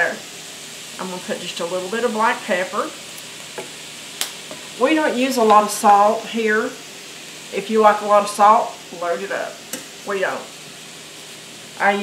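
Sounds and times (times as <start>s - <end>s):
vegetables sizzling in butter: 0.0s - 12.0s.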